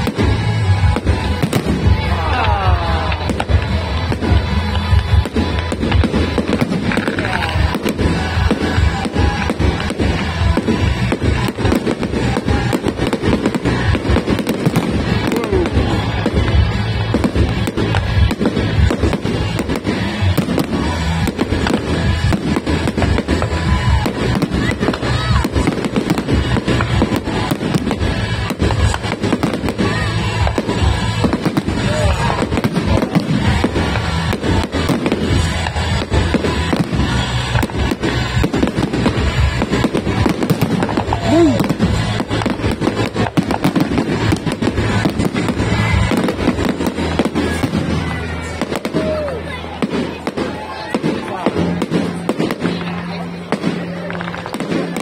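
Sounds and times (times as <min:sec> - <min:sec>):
fireworks bursting and crackling: 0:00.0 - 0:55.0.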